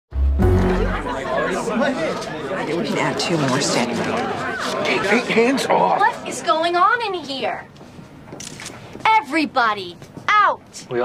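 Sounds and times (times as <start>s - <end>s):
crowd chattering: 0.1s - 9.5s.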